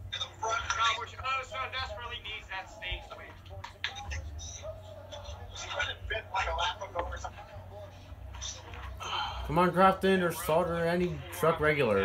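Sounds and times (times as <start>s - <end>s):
steady low hum: 0.0s - 12.0s
television speech: 0.0s - 12.0s.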